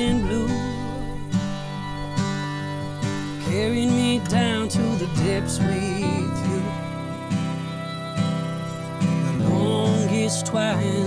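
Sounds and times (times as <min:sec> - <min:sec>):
acoustic guitar strumming: 0:00.0 - 0:11.0
fiddle bowing a melody: 0:00.0 - 0:11.0.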